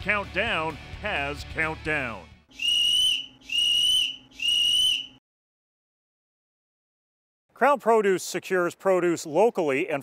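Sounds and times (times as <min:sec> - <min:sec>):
referee's whistle blast: 0:02.6 - 0:05.2.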